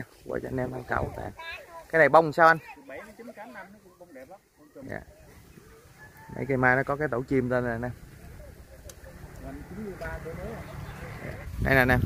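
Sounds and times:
quiet indistinct talking: 0:00.0 - 0:11.9.

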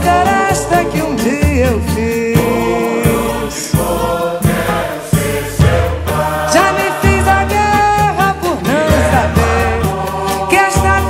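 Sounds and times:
light percussion: 0:00.0 - 0:11.0
steady bass line: 0:00.0 - 0:11.0
backing voices holding notes: 0:02.4 - 0:11.0.

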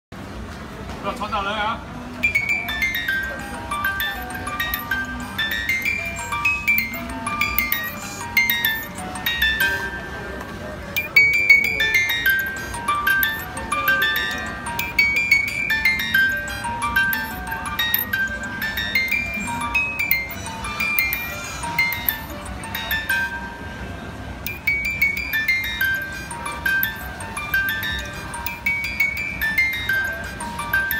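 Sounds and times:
music box tinkling melody: 0:02.1 - 0:30.9.

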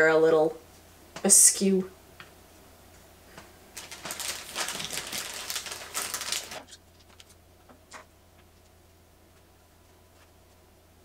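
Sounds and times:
plastic bag crinkling: 0:03.7 - 0:07.4.

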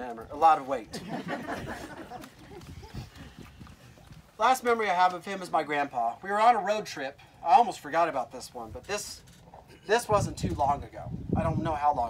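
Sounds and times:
small crowd chuckling: 0:00.9 - 0:03.5.

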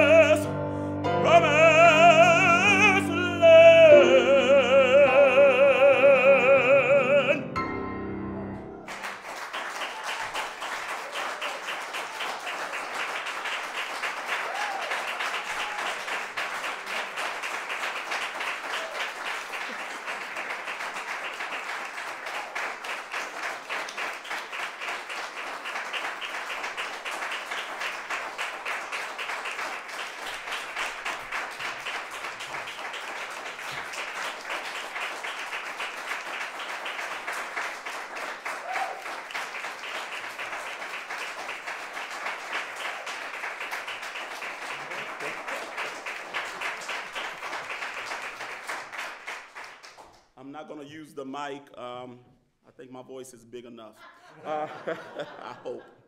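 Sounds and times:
audience applauding: 0:00.0 - 0:00.5, 0:01.2 - 0:07.4, 0:08.8 - 0:50.3.

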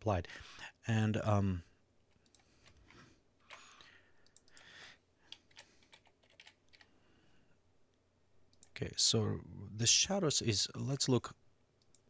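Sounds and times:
faint keyboard keystrokes: 0:05.3 - 0:06.9.

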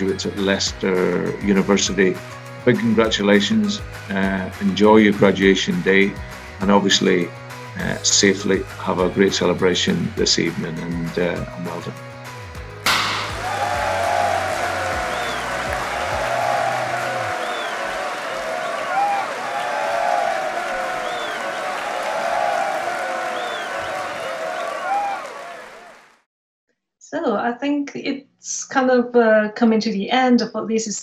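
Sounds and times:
music: 0:00.0 - 0:25.8
crowd applause: 0:12.9 - 0:26.3.

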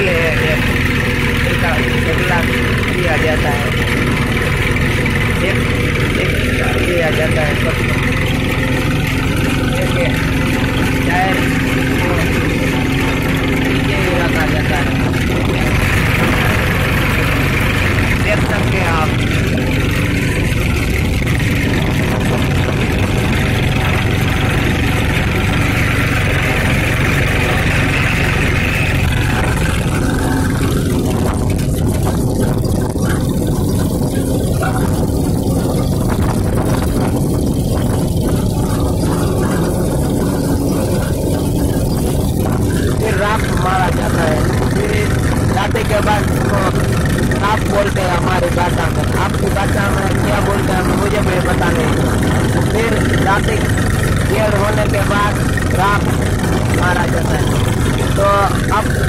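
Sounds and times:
diesel tractor engine running: 0:00.0 - 0:59.0.

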